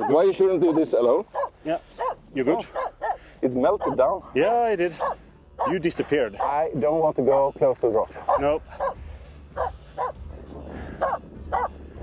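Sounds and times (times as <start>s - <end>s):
dog yipping: 0.0s - 4.2s, 5.0s - 6.6s, 8.2s - 9.0s, 9.6s - 10.2s, 11.0s - 11.8s.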